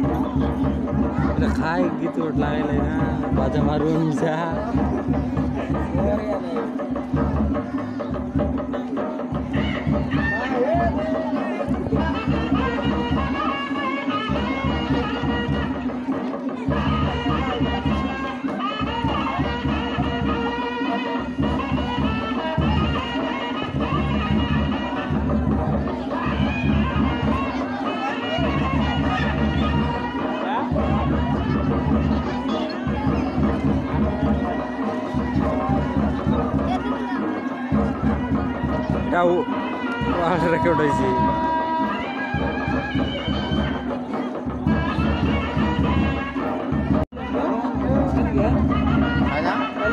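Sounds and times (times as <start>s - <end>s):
drums beating steady rhythm: 0.0s - 49.9s
reed-like melody: 0.0s - 49.9s.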